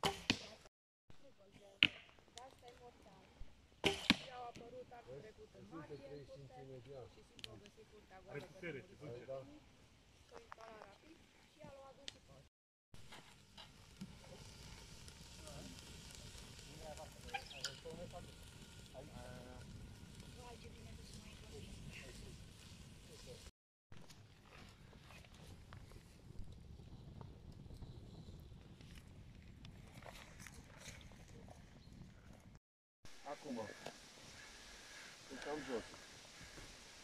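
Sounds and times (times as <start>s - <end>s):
fire crackles: 1.1s - 12.4s, 13.0s - 37.0s
campfire hissing: 13.0s - 23.5s, 25.1s - 32.5s, 33.1s - 37.0s.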